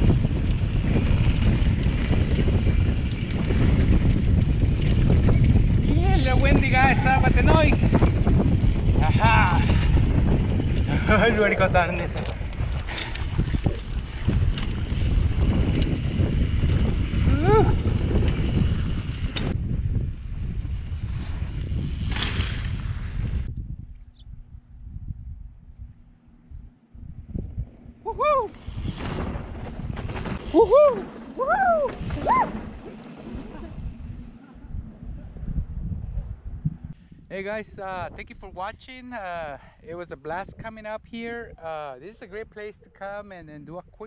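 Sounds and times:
wind rumbling on microphone: 0.0 - 44.0
people whooping: 28.0 - 28.6, 30.5 - 32.8.

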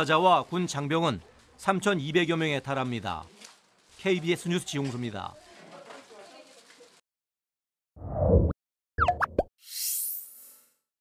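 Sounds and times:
plopping electronic blips: 9.0 - 10.2.

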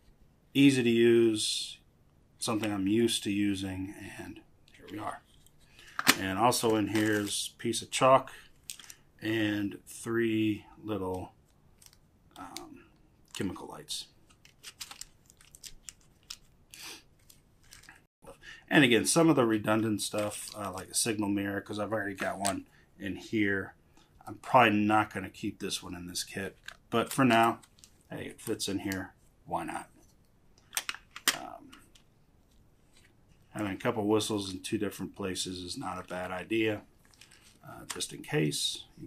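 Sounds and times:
plastic wrappers crinkling: 4.8 - 7.5, 8.5 - 9.1, 11.4 - 12.0, 14.2 - 18.1, 20.0 - 21.0, 26.5 - 29.0, 36.9 - 38.2.

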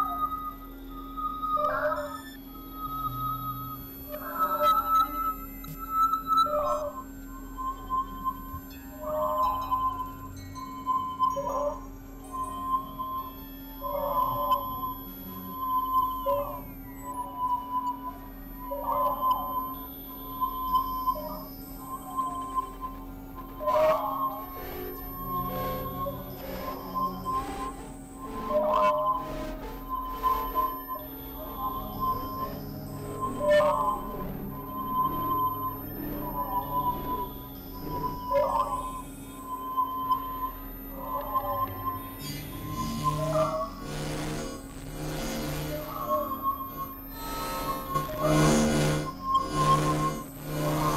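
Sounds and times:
high sine-like synth tone: 0.0 - 50.9
low synth hum: 19.4 - 50.9
warbling synth burst: 23.7 - 38.2, 42.1 - 50.9.

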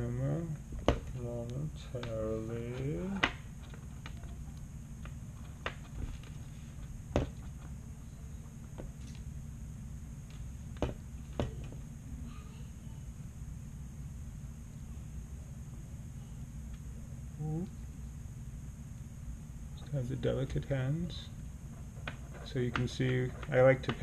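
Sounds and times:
low background hum: 0.0 - 24.0.

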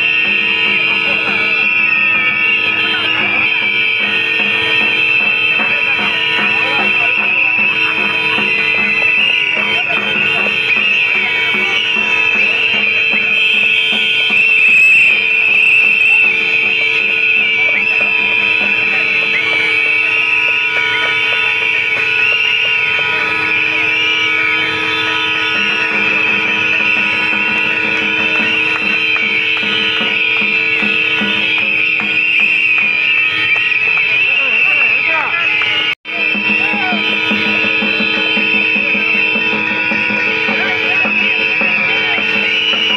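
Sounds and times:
crowd voices: 0.0 - 42.9
crowd whistling: 0.0 - 42.9.

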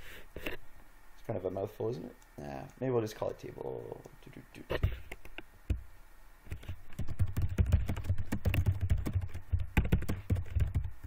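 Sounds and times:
computer keyboard typing: 6.5 - 11.0.

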